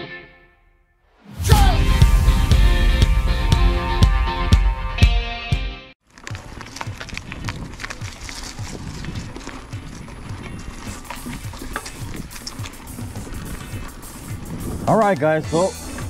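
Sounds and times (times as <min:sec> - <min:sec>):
bike rattling over bumps: 0:06.0 - 0:16.0
tyres rumbling on dirt: 0:06.0 - 0:16.0
wind: 0:06.0 - 0:16.0.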